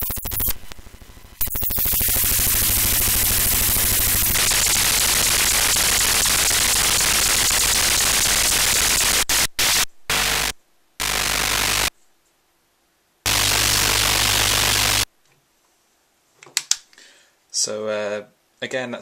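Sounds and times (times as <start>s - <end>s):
low buzzing hum: 0.0s - 11.9s, 13.3s - 15.1s
chopped static noise: 0.0s - 15.3s.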